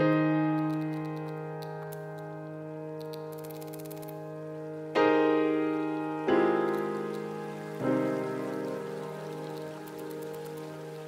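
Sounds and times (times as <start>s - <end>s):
faint high crackles: 0.0s - 11.0s
sustained keyboard chord: 0.0s - 11.0s.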